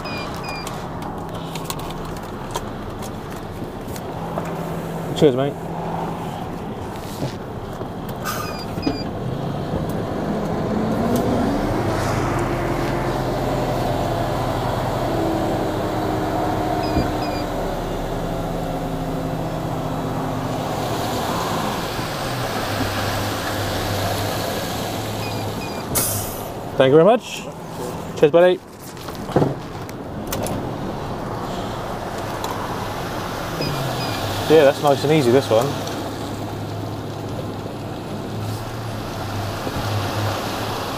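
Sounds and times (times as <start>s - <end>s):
diesel engine revving: 0.0s - 28.3s, 30.0s - 40.9s.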